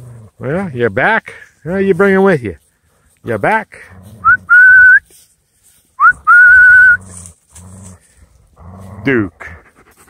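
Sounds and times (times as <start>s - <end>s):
loud whistle: 6.0s - 7.0s.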